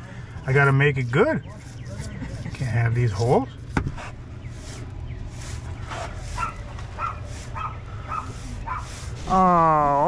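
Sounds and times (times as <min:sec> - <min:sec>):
brush scratching on concrete: 0:00.5 - 0:10.0.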